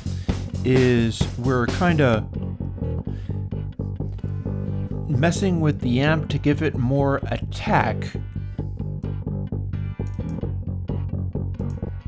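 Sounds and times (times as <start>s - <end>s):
electric bass plucked notes: 0.0s - 12.0s.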